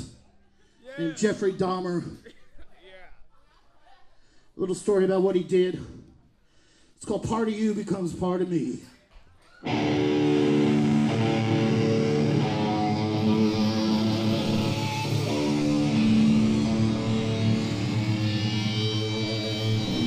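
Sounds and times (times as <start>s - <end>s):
held electric guitar chords: 9.6s - 20.0s
heavy metal band playing live: 9.7s - 20.0s.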